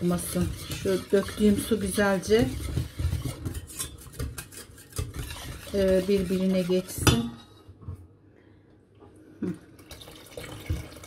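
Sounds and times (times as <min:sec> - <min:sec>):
whisk clinking against pot: 0:00.0 - 0:07.4
whisk stirring soup: 0:00.0 - 0:07.6.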